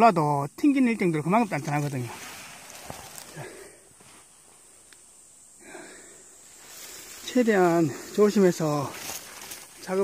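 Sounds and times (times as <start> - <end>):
soft hiss: 0.0 - 10.0
rustling of leafy undergrowth: 0.8 - 10.0.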